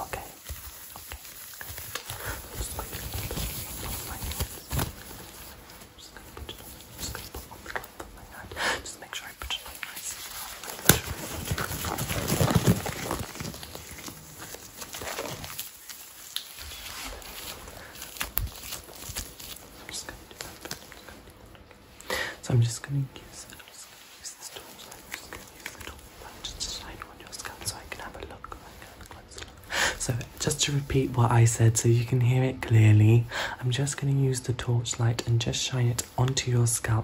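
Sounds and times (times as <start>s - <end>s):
rubber glove rustling and stretching: 0.0s - 8.5s, 9.4s - 22.0s.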